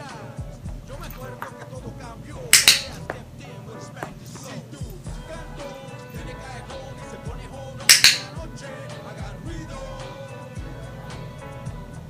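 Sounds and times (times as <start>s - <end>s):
training clicker double click: 2.6s - 3.0s, 7.9s - 8.3s.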